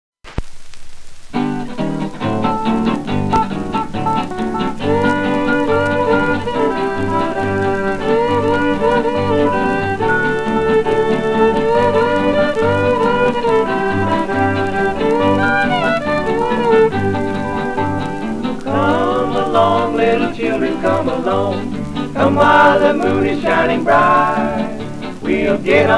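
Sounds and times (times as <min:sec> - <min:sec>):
record surface hiss: 0:00.2 - 0:25.9
string-band country music: 0:01.3 - 0:25.9
fiddle lead: 0:01.5 - 0:25.9.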